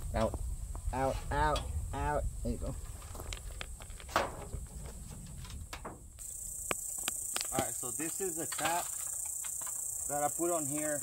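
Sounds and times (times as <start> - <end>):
high-pitched insect drone: 6.2 - 11.0.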